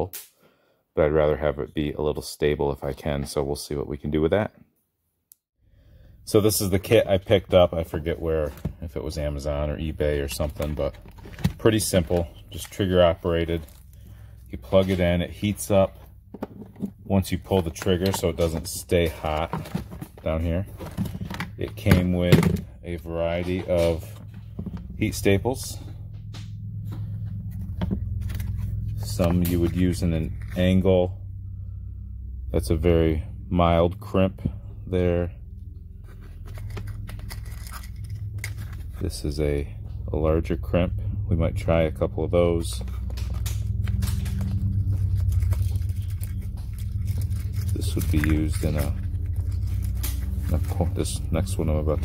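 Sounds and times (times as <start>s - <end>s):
low background hum: 5.7s - 52.0s
plastic rustling: 10.3s - 12.8s, 16.4s - 22.7s, 42.8s - 52.0s
plane flying overhead: 20.5s - 52.0s.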